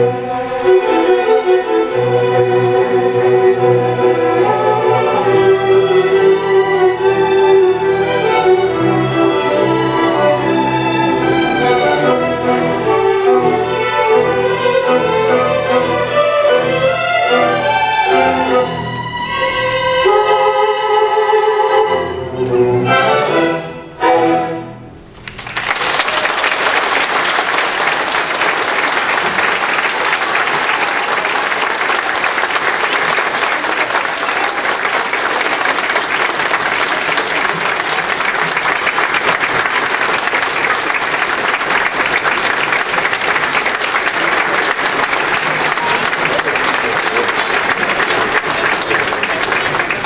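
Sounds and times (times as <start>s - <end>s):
large audience applauding: 25.1s - 50.0s.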